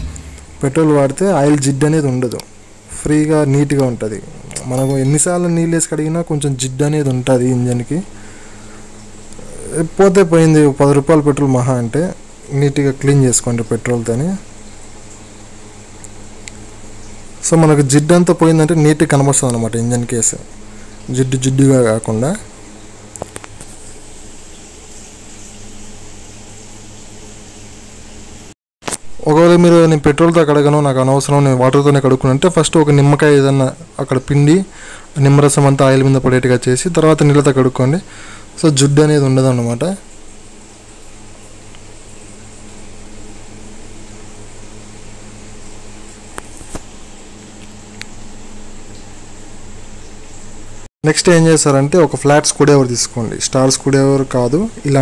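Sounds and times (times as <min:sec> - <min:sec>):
low hum and hiss: 0:00.0 - 0:55.0.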